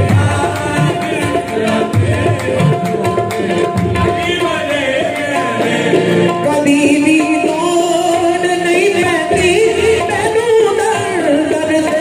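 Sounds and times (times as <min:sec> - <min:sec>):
harmonium: 0:00.0 - 0:12.0.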